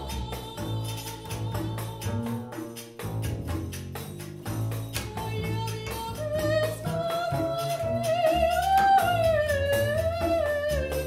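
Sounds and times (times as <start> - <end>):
soprano voice singing: 0.0 - 2.7, 5.1 - 11.0
light hand percussion: 0.0 - 11.0
low bass notes: 0.0 - 11.0.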